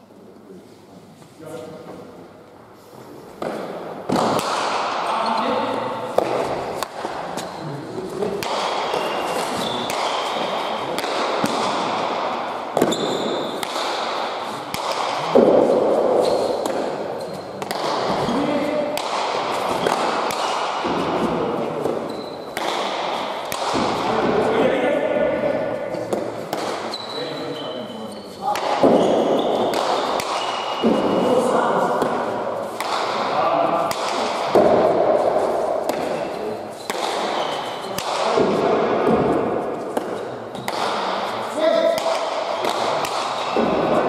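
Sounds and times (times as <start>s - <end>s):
ball striking court walls: 3.4s - 5.4s, 6.1s - 7.5s, 8.2s - 24.5s, 26.0s - 27.1s, 28.4s - 44.0s.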